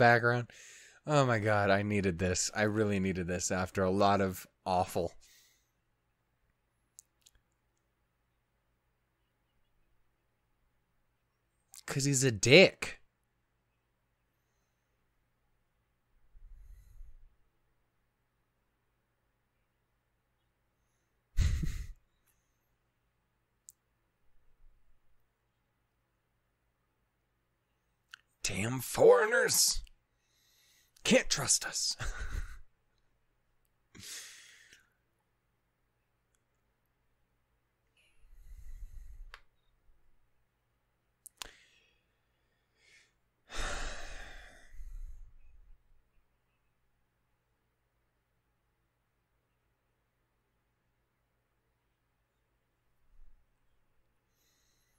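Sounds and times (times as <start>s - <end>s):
man breathing out sharply: 0.5s - 1.0s, 34.0s - 34.8s, 41.4s - 45.3s
man sighing heavily: 32.0s - 32.7s, 34.0s - 34.8s, 42.9s - 45.1s.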